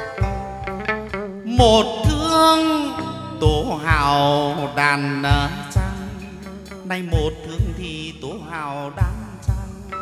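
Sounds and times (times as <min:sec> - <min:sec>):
low drum beats: 0:00.0 - 0:04.7, 0:05.3 - 0:08.4, 0:09.0 - 0:10.0.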